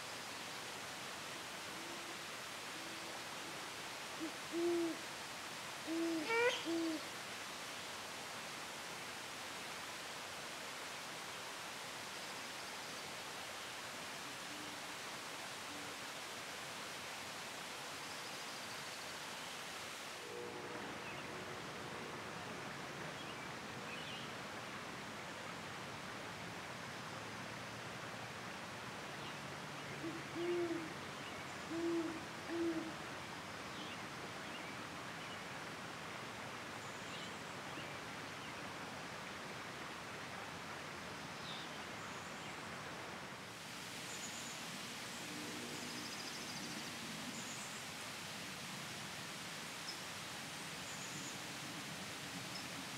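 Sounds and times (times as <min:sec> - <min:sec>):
steady background hiss: 0:00.0 - 0:52.9
owl hooting: 0:04.2 - 0:05.0, 0:05.9 - 0:07.0, 0:30.0 - 0:30.9, 0:31.7 - 0:32.9.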